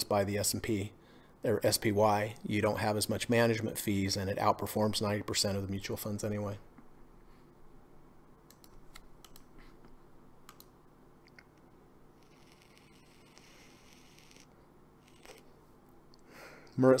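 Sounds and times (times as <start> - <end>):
soft hiss: 0.0 - 17.0.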